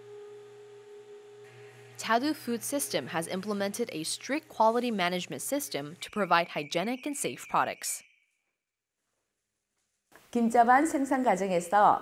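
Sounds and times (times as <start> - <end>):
conveyor machinery hum: 0.0 - 8.0.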